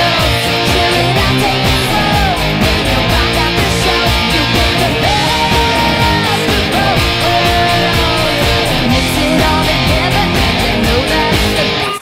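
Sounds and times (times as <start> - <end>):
steady drum beat: 0.0 - 11.8
electric guitar strumming: 0.0 - 12.0
pop-rock backing track: 0.0 - 12.0.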